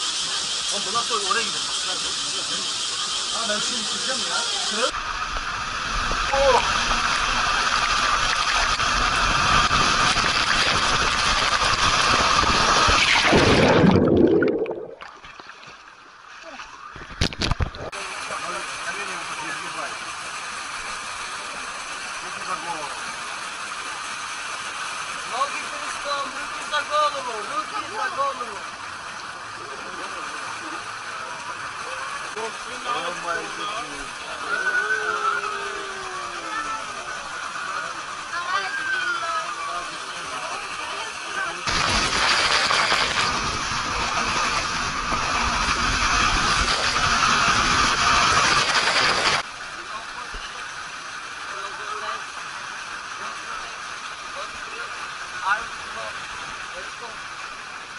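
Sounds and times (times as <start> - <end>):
water and air rushing through tube: 4.9 - 15.8, 41.6 - 49.5.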